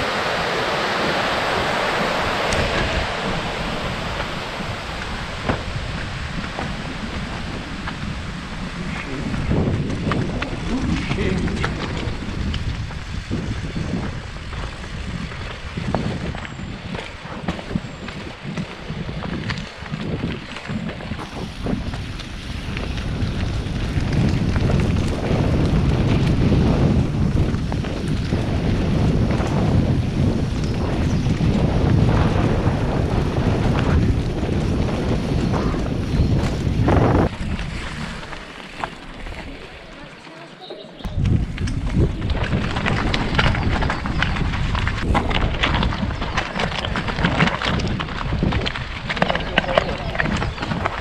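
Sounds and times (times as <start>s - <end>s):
wind buffeting microphone: 0.0s - 51.0s
bike knocking and rattling: 2.5s - 51.0s.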